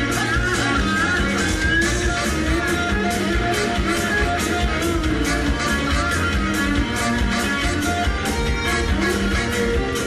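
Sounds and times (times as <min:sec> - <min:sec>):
rock band playing: 0:00.0 - 0:10.0
steady drum beat: 0:00.0 - 0:10.0.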